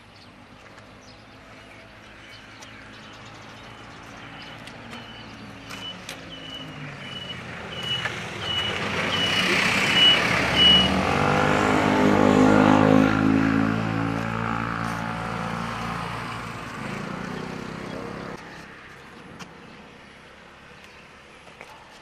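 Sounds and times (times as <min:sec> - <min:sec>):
truck engine passing: 0:03.5 - 0:18.9
high warning beep: 0:05.0 - 0:10.9.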